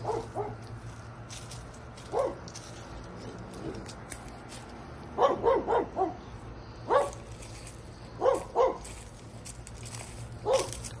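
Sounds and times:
dog barking: 0:00.0 - 0:00.6, 0:02.1 - 0:02.5, 0:05.2 - 0:06.2, 0:06.9 - 0:07.2, 0:08.2 - 0:08.9, 0:10.4 - 0:10.8.

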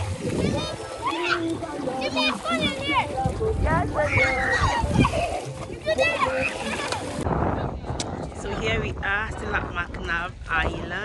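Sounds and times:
children splashing in water: 0:00.0 - 0:07.5
children calling out: 0:00.3 - 0:03.3, 0:03.9 - 0:07.2.

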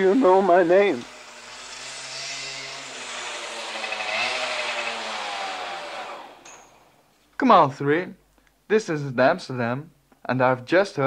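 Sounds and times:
vehicle engine driving off: 0:00.2 - 0:06.5.

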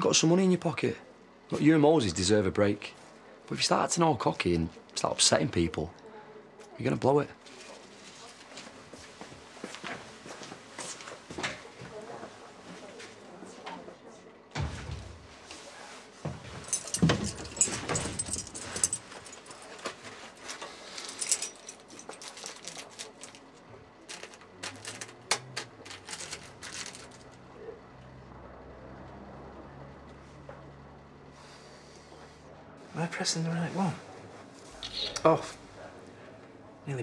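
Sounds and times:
low steady hum: 0:14.2 - 0:37.0
keys clinking: 0:16.4 - 0:27.4
plastic bag crinkling: 0:20.4 - 0:27.4.

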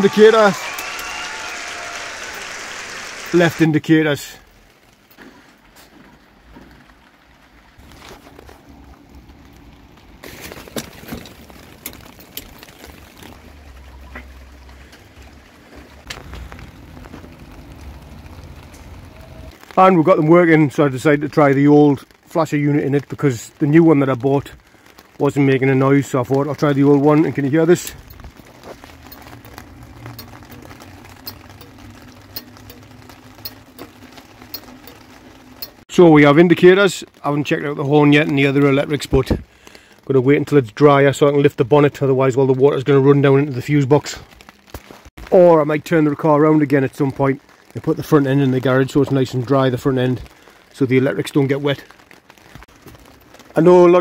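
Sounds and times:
rain dripping and trickling: 0:00.0 - 0:54.0
indicator flasher ticking: 0:29.0 - 0:35.8.

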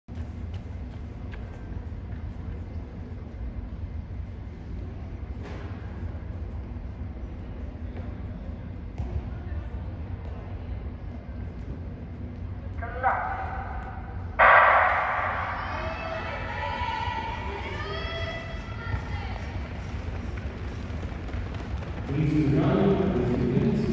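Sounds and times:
low hall rumble: 0:00.1 - 0:23.9.

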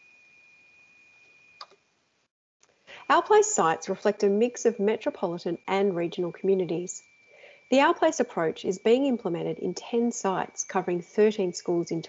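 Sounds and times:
thin high whine: 0:00.0 - 0:12.0.

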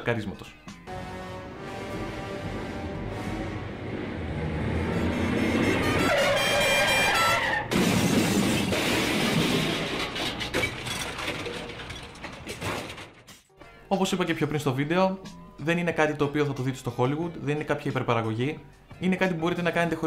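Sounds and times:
high held tone: 0:00.9 - 0:07.6
car engine building: 0:00.9 - 0:10.5
loud crash: 0:02.6 - 0:13.3
crunching debris: 0:07.6 - 0:13.3
breaking glass: 0:07.7 - 0:13.3.

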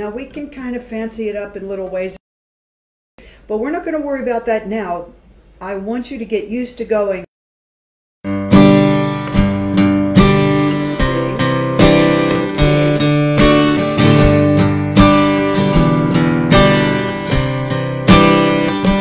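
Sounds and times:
acoustic guitar bass notes and strums: 0:08.2 - 0:19.0.

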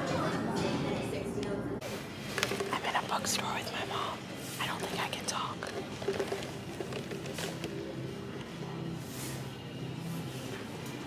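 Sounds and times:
whispered voices: 0:00.0 - 0:06.1
quiet background music: 0:00.0 - 0:11.0.

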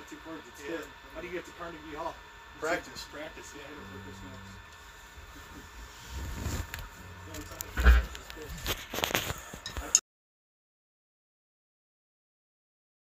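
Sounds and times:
low electrical hum: 0:00.0 - 0:10.0
heavy thump: 0:07.8 - 0:08.1.

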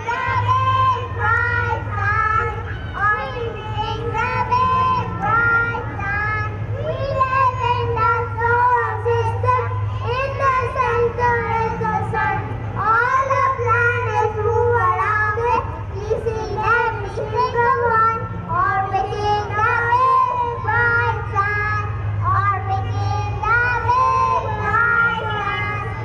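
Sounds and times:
children singing over loudspeakers: 0:00.0 - 0:26.0
steady low hum: 0:00.0 - 0:26.0.

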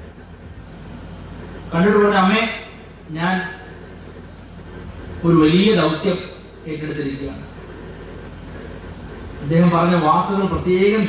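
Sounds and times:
crickets chirping: 0:00.0 - 0:11.0
man talking: 0:01.7 - 0:03.6, 0:05.2 - 0:07.5, 0:09.4 - 0:11.0.

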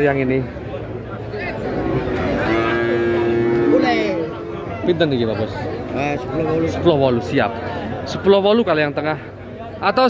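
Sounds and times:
crowd chatter: 0:00.0 - 0:10.0
young cow mooing: 0:02.0 - 0:04.6.

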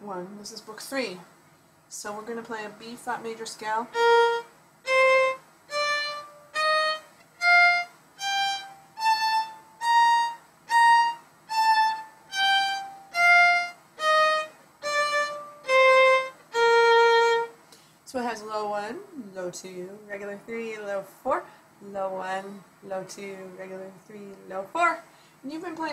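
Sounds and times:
violin playing a scale: 0:03.9 - 0:17.6.

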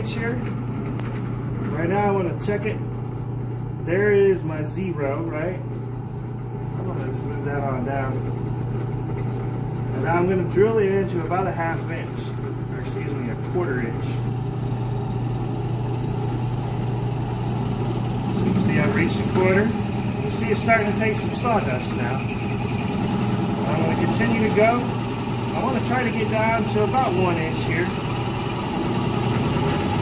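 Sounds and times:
drill press humming: 0:12.5 - 0:30.0
drill bit boring into wood: 0:14.2 - 0:30.0.

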